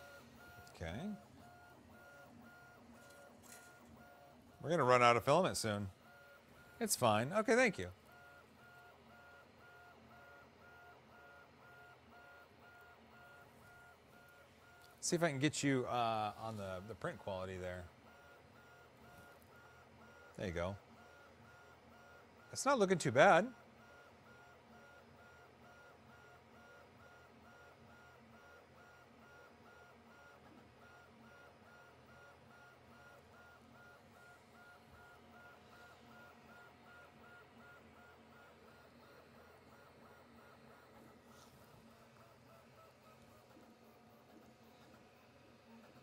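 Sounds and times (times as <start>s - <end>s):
printer stepper motor tones: 0.0s - 46.0s.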